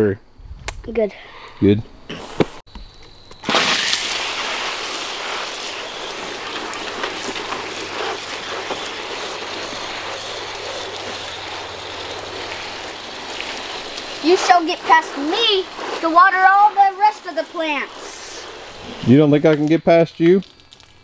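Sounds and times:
hose water spraying: 3.4s - 21.0s.

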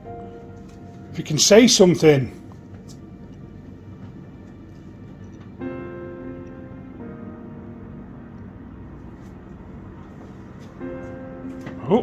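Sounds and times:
sustained musical tone: 0.0s - 12.0s.

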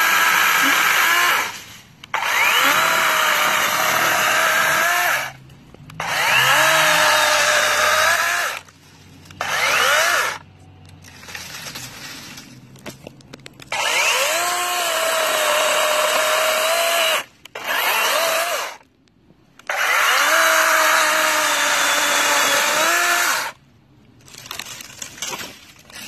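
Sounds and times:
chainsaw cutting branches: 0.0s - 5.4s, 6.0s - 10.4s, 11.0s - 12.5s, 13.6s - 18.8s, 19.6s - 23.6s.

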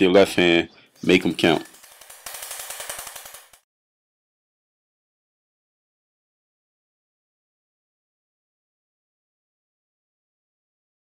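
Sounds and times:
rapidly pulsing sound: 1.1s - 3.6s.

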